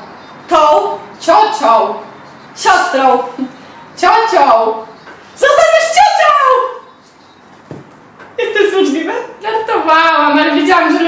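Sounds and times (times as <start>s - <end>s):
soft knock: 7.6s - 7.9s.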